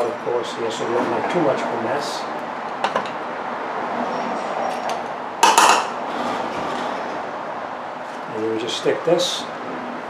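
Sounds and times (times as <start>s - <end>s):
shop background hum: 0.0s - 10.0s.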